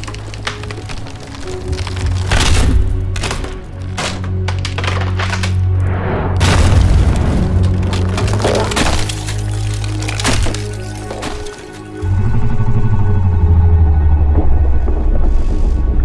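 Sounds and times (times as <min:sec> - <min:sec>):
wood cracking and splintering: 0:00.0 - 0:12.0
heavy booming impacts: 0:05.9 - 0:09.2
low film score drone: 0:11.8 - 0:16.0.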